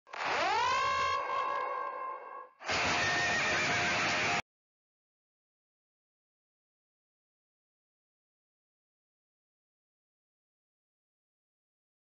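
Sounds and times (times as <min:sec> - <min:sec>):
loud noise with wavering tone: 0:02.6 - 0:04.4.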